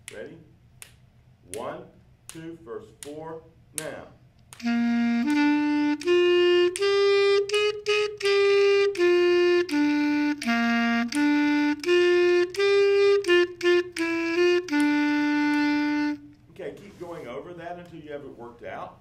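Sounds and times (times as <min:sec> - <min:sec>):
clarinet playing melody: 0:04.6 - 0:16.4.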